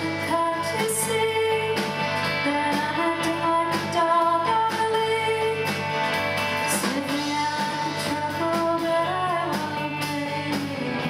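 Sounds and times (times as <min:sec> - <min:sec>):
person singing: 0:00.0 - 0:05.7, 0:06.6 - 0:11.0
electric bass: 0:00.0 - 0:11.0.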